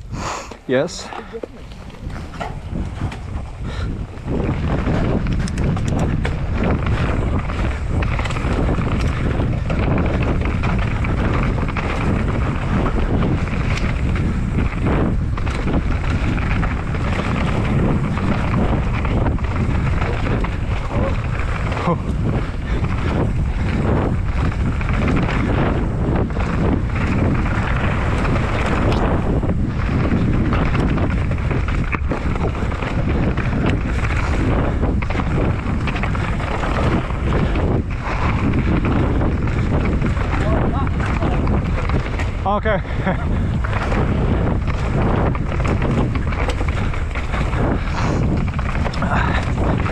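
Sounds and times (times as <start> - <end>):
wind buffeting microphone: 0.0 - 49.9
tyre noise on dirt: 0.1 - 49.9
bike clattering over bumps: 0.7 - 49.9.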